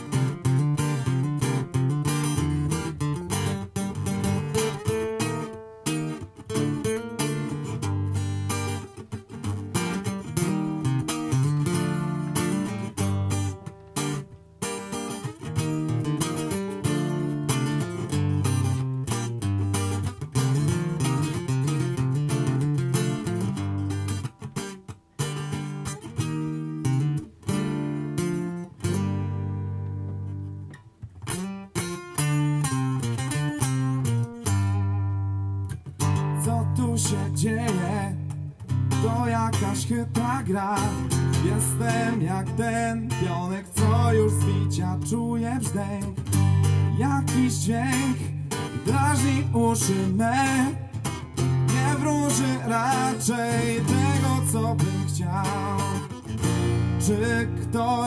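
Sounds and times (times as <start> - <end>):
acoustic guitar strumming and picking: 0.0 - 58.0.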